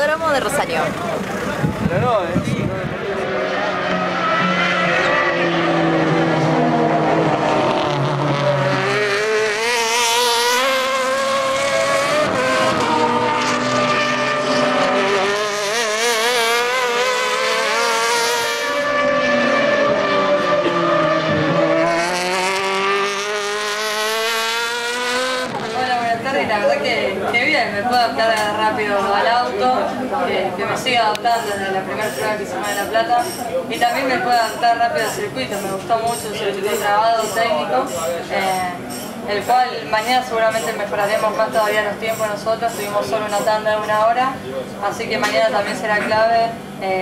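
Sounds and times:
racing car engines: 0.0 - 47.0.

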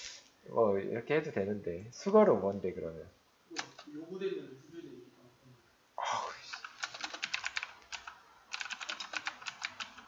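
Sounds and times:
computer keyboard typing: 6.5 - 10.0.

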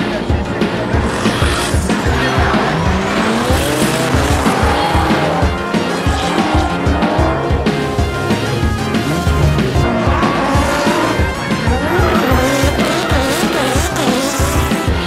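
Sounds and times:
background music with steady beat: 0.0 - 15.0
car engines revving: 0.0 - 15.0
tires squealing: 0.0 - 15.0.

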